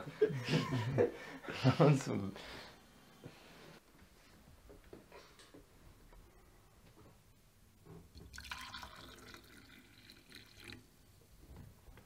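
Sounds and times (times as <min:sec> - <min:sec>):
coffee pouring into a glass mug: 0:08.2 - 0:10.9.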